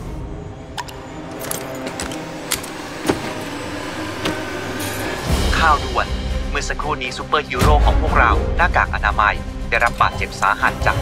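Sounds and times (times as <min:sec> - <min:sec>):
metal instruments clinking: 0:00.8 - 0:03.6.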